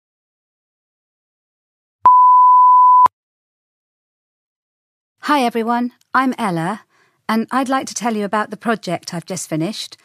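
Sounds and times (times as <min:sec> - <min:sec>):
electronic beep: 0:02.1 - 0:03.1.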